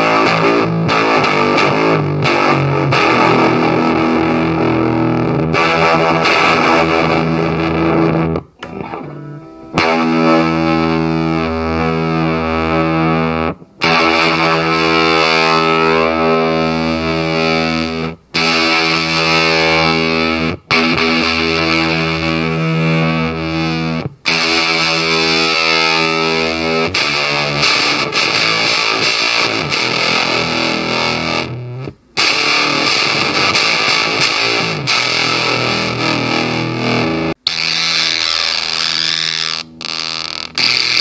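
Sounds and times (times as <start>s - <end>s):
fuzzed electric guitar chord: 0.0s - 41.0s.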